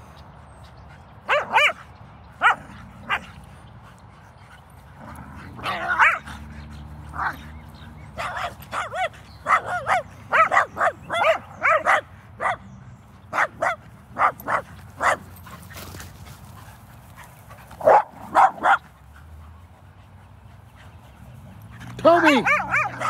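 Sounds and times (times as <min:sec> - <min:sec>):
dog barking: 0:01.3 - 0:01.8, 0:02.4 - 0:03.3, 0:05.6 - 0:06.3, 0:08.2 - 0:12.7, 0:13.3 - 0:15.3, 0:17.8 - 0:18.8, 0:22.3 - 0:23.0.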